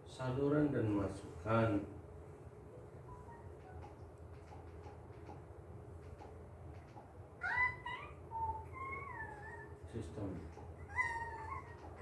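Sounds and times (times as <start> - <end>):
high-pitched cat-like calls: 7.4 - 9.8.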